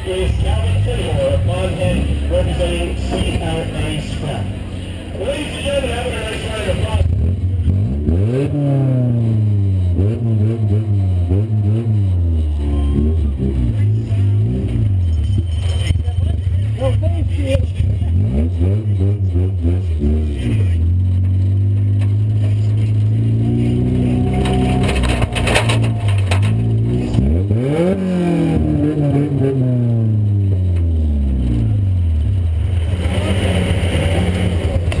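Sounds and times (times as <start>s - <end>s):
car engine revving: 0.0s - 35.0s
rattling and clatter: 14.6s - 16.7s, 24.2s - 27.3s.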